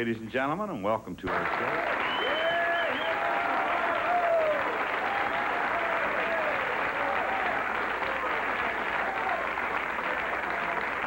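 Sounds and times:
audience applauding: 1.3s - 11.0s
audience cheering: 1.3s - 11.0s.

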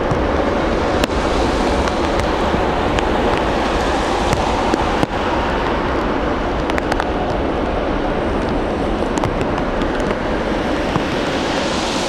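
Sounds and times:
jet airliner roar: 0.0s - 12.0s
rain hiss: 0.0s - 12.0s.

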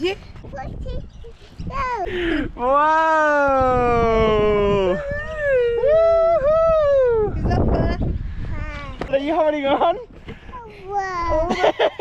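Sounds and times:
person whooping: 2.6s - 7.4s.

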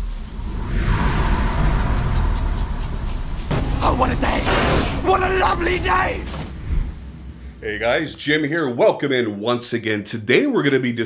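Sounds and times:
loud rushing whoosh: 0.0s - 8.5s
deep low rumble: 0.0s - 8.8s.

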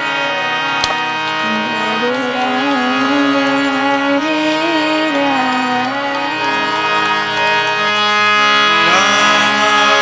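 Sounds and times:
harmonium chords: 0.0s - 10.0s
sharp click: 0.8s - 1.0s.

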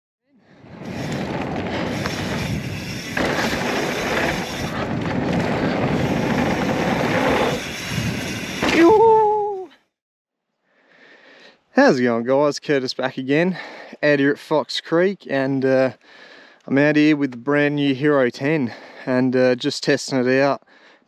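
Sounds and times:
bike tyres and wind rushing: 0.4s - 9.6s.

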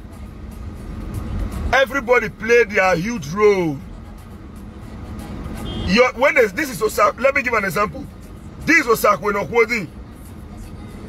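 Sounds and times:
man speaking: 1.8s - 3.8s, 5.9s - 9.9s.

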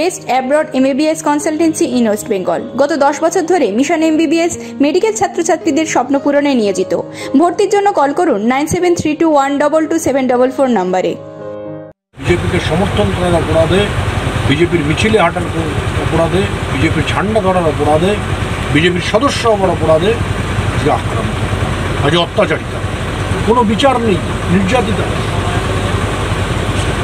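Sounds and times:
man talking: 12.2s - 22.7s, 23.4s - 26.0s
boat engine humming: 12.2s - 27.0s.

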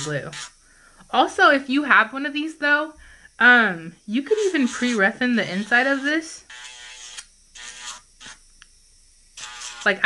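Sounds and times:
electric nail drill humming: 0.0s - 10.0s.

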